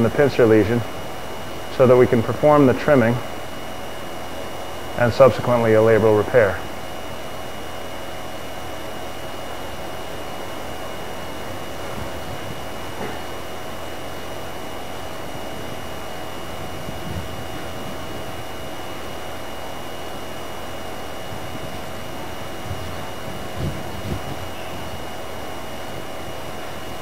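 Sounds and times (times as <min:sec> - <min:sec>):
faint hum tones: 0:00.0 - 0:27.0.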